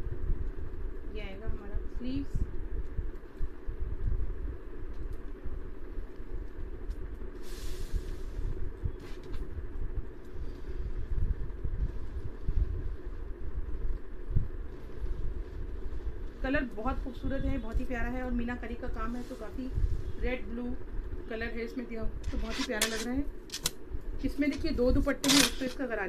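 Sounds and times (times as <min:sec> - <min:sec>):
low uneven rumble: 0:00.0 - 0:25.2
steady hum: 0:00.0 - 0:26.0
short hiss: 0:07.4 - 0:08.4.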